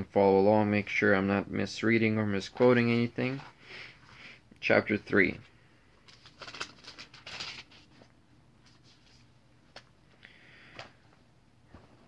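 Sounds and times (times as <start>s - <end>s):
book pages rustling: 6.1s - 10.0s.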